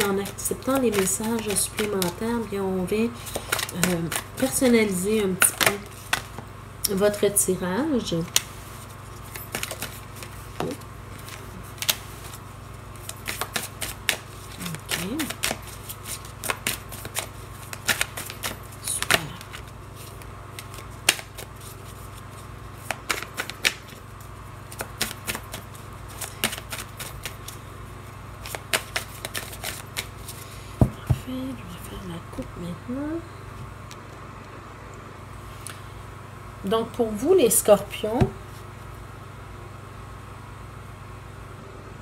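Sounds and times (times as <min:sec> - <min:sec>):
cards being shuffled: 0:00.0 - 0:06.4, 0:08.2 - 0:27.6, 0:28.4 - 0:31.3.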